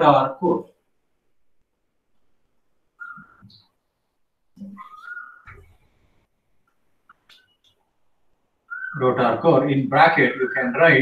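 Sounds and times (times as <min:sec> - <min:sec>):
marker squeaking on whiteboard: 0:03.0 - 0:03.8, 0:04.6 - 0:07.8, 0:08.7 - 0:09.0.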